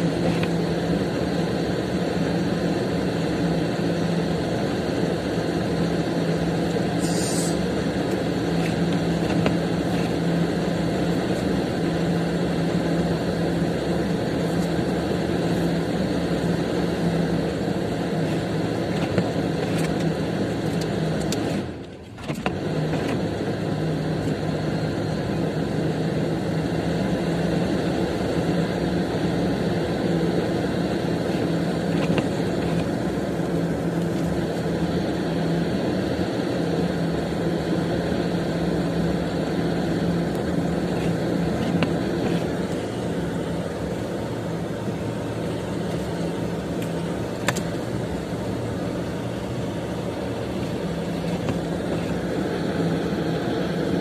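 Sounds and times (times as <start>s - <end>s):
car cabin noise: 0.0s - 54.0s
low steady hum: 0.0s - 54.0s.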